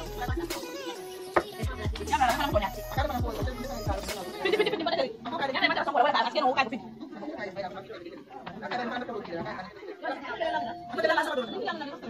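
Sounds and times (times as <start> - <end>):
indistinct background chatter: 0.0 - 12.0.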